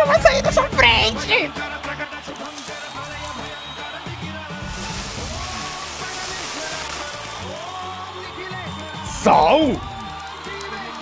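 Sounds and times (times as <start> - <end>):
background music: 0.0 - 11.0
hissing rush of thrown salt: 4.6 - 8.3.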